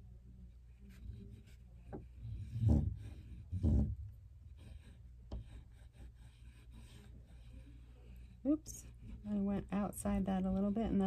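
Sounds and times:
oil pastel drawing on paper: 0.1 - 11.0.

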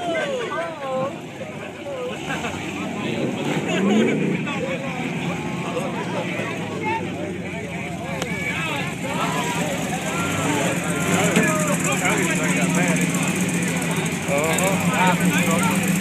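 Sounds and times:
onlookers talking: 0.0 - 16.0
truck engine running: 0.0 - 16.0.

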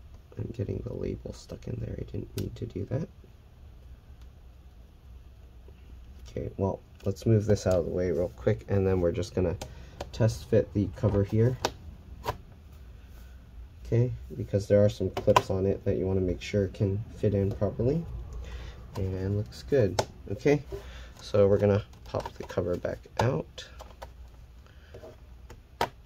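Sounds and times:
faint handling noise: 5.6 - 26.0.

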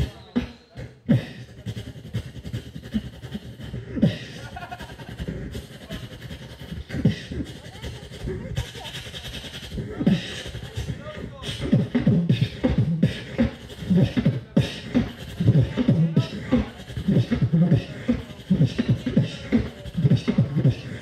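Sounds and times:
beatboxing into microphone: 0.0 - 21.0.

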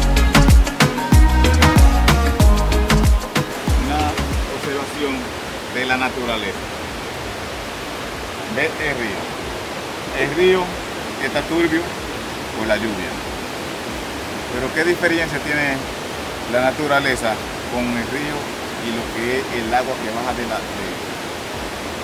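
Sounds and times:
river water over rocks: 0.5 - 22.0
man speaking: 3.7 - 6.6, 8.5 - 9.3, 10.1 - 11.9, 12.6 - 13.2, 14.5 - 15.9, 16.5 - 21.0.

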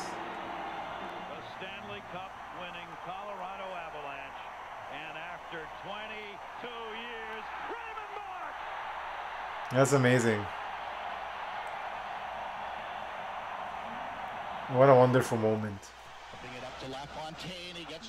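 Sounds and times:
arena crowd cheering: 0.0 - 18.0
sports commentator talking: 1.2 - 8.6, 9.7 - 10.6, 14.6 - 18.0.

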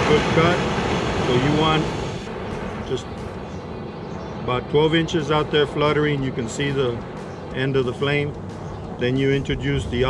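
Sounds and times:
cutting torch flame rushing: 0.0 - 2.9.

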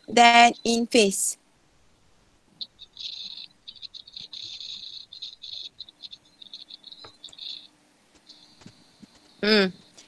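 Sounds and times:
small animal chirping: 2.6 - 10.0.

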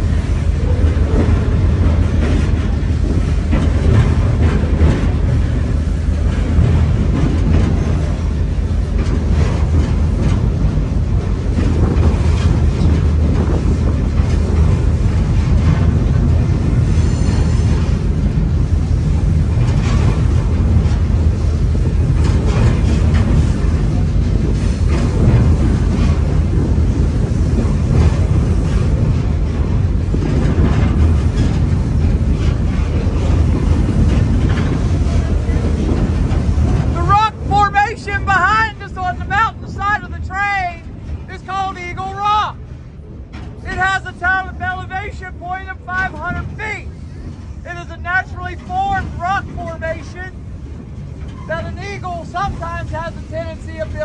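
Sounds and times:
train wheels rumbling on rail: 0.0 - 54.0
high squeal: 17.0 - 17.8.

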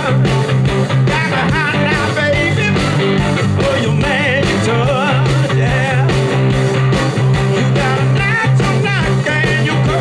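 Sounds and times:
drums: 0.0 - 10.0
electric guitars: 0.0 - 10.0
person singing with vibrato: 1.1 - 6.3, 7.5 - 10.0.

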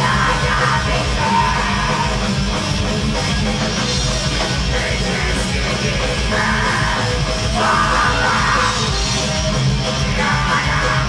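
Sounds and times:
harsh screamed vocals: 0.0 - 2.3, 4.7 - 9.3, 9.9 - 11.0
distorted guitars: 0.0 - 11.0.

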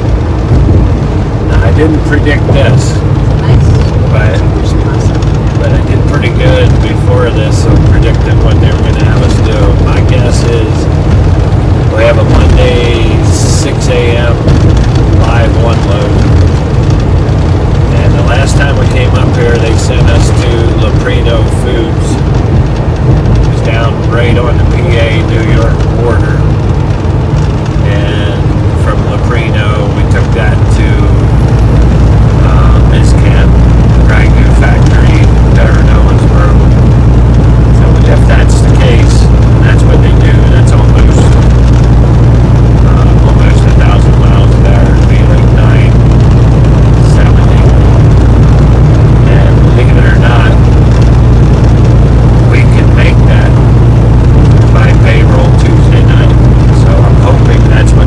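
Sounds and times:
truck engine drone and road noise: 0.0 - 58.0
voices talking: 1.5 - 10.9, 11.9 - 16.4, 17.9 - 22.2, 23.5 - 26.5, 27.8 - 31.3, 32.4 - 36.9, 37.6 - 41.6, 42.8 - 46.2, 47.0 - 48.1, 49.2 - 50.8, 52.4 - 53.8, 54.6 - 58.0.

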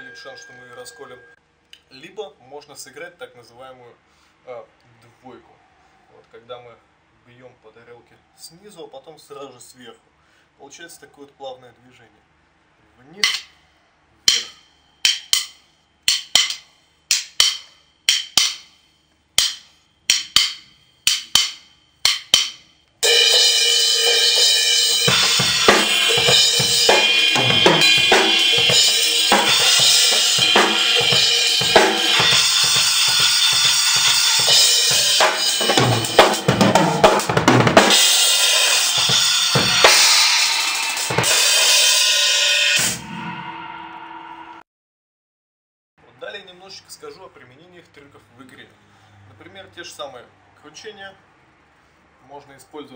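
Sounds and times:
full drum kit playing: 14.3 - 15.5, 16.1 - 18.6, 19.4 - 43.8
cymbal struck in quick pairs: 14.3 - 18.7, 19.4 - 44.6.

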